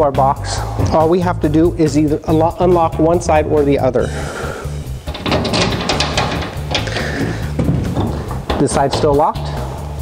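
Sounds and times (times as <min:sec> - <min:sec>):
background music with steady beat: 0:00.0 - 0:10.0
metal latch clicking and rattling: 0:04.9 - 0:09.6.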